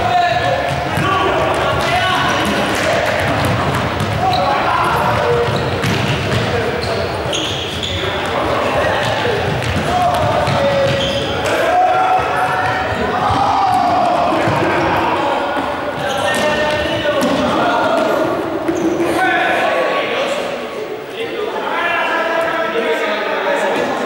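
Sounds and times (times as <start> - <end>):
people shouting: 4.2 - 5.6, 9.8 - 15.6.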